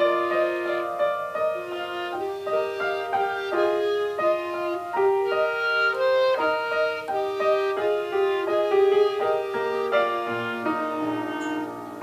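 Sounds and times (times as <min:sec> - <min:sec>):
clarinet duet: 0:00.0 - 0:12.0.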